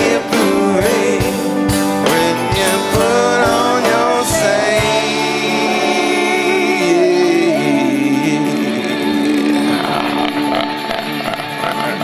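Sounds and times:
drum kit beat: 0.0s - 12.0s
rock band playing: 0.0s - 12.0s.

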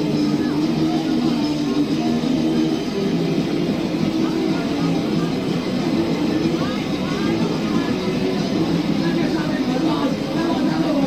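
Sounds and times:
punk band playing: 0.0s - 11.0s.

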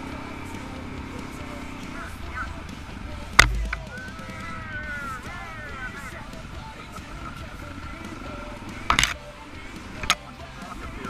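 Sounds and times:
motorcycle engine running: 0.0s - 11.0s
sharp knocks of bike on bumps: 2.6s - 4.0s, 7.8s - 10.8s.

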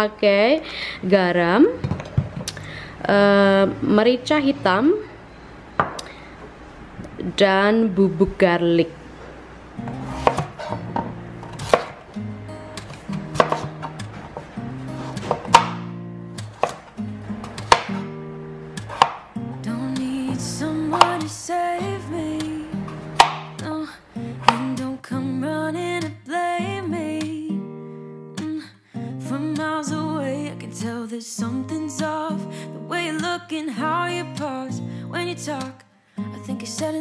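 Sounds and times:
guitar music: 9.4s - 37.0s
knife chopping on plastic board: 9.9s - 12.0s, 12.8s - 18.0s, 18.8s - 19.3s, 20.9s - 21.3s, 22.9s - 23.6s, 24.4s - 24.8s.

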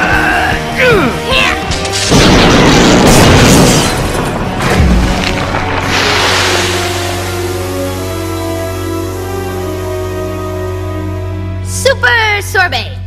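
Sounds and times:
dramatic background music: 0.0s - 13.0s
cartoon electrical blast: 5.8s - 8.2s.

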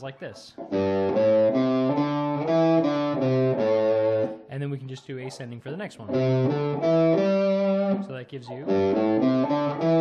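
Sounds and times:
person speaking: 0.0s - 0.7s, 4.4s - 6.2s, 8.0s - 8.8s
electric guitar single notes: 0.6s - 4.5s, 6.1s - 10.0s.

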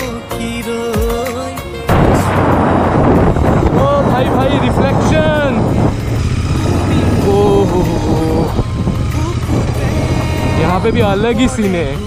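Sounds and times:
motorcycle engine running: 1.9s - 12.0s.

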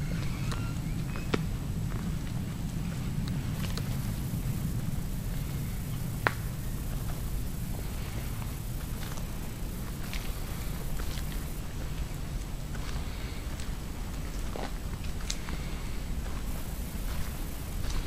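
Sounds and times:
small clicks and snaps: 15.2s - 15.4s.

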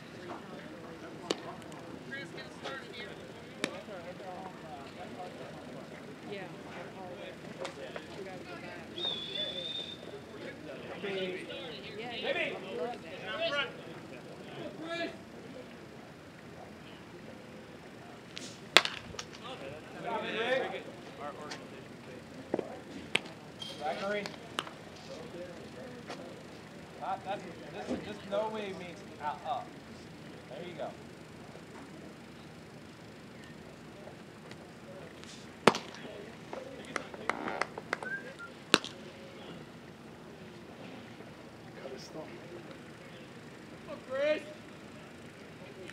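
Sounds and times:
voices calling out: 0.0s - 45.9s
baseball smacking into glove: 18.4s - 19.4s, 35.7s - 36.0s, 38.7s - 39.0s.

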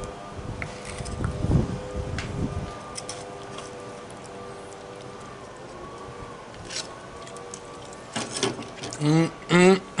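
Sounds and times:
man humming mm: 9.0s - 10.0s.

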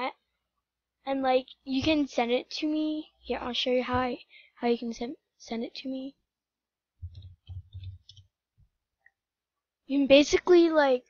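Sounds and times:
computer mouse clicks: 7.0s - 8.4s.

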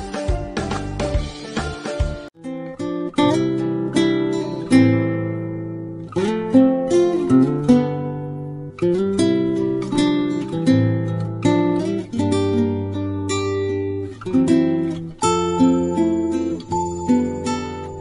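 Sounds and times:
acoustic guitar chords: 0.0s - 18.0s.

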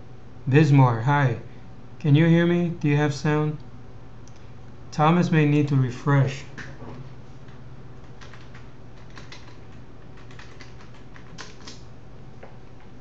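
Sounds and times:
low steady hum: 0.0s - 13.0s
computer keyboard clicks: 8.0s - 11.8s.

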